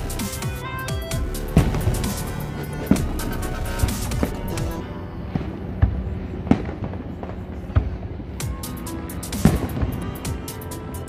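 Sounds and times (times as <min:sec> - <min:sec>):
distant fireworks booms: 0:01.1 - 0:10.6.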